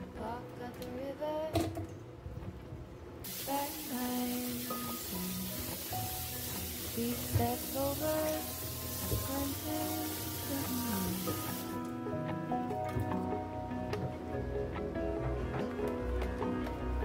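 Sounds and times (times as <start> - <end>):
melodic background music: 3.3 - 17.0.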